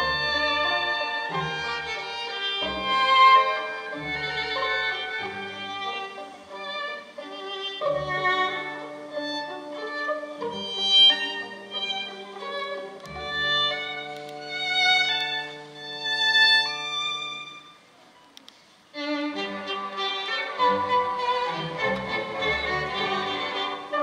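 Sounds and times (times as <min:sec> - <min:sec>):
orchestral music: 0:00.0 - 0:17.6, 0:19.0 - 0:24.0
solo violin: 0:00.0 - 0:18.0, 0:18.9 - 0:24.0.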